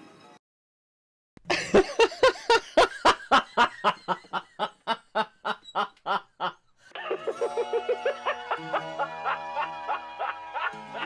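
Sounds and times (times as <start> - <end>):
man laughing: 1.4 - 11.0.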